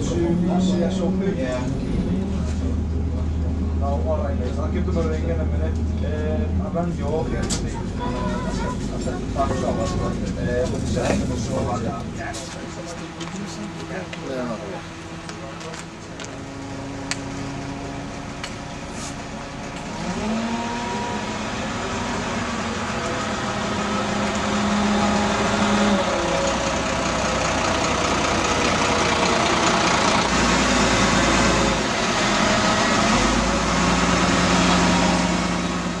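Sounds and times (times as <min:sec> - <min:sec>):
diesel bus driving past: 0:00.0 - 0:36.0.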